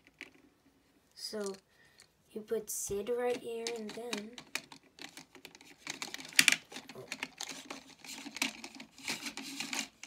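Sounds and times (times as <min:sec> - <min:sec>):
plastic toy clicks and scrapes: 0:03.3 - 0:10.0.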